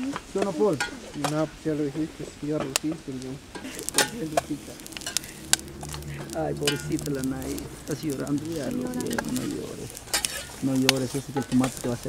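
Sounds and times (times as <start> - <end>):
faint hiss: 0.0 - 12.0
spoons clicking against metal pots: 3.5 - 7.3, 9.9 - 11.8.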